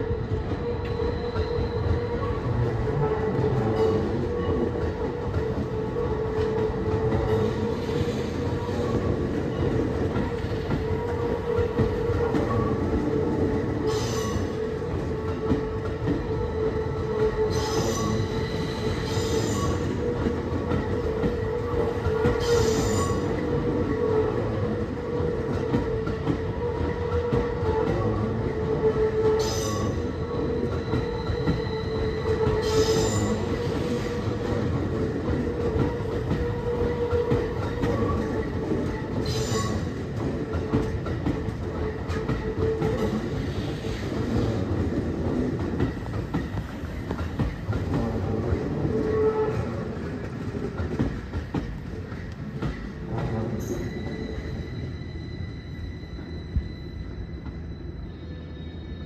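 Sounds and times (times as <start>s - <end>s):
train rumbling slowly: 0.0s - 59.0s
wheel squeal: 15.6s - 20.3s, 21.2s - 24.4s, 26.1s - 44.6s, 53.2s - 59.0s.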